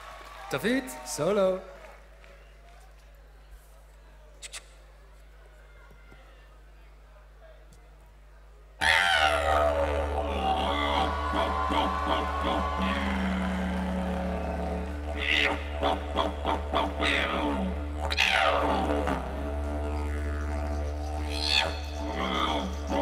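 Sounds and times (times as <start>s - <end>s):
didgeridoo drone: 8.8s - 23.0s
rhythmic breath pulses: 9.2s - 23.0s.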